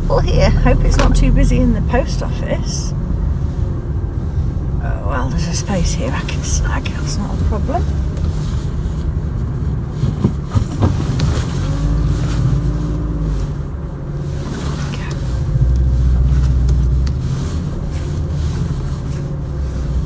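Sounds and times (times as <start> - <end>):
car engine low rumble: 0.0 - 20.0.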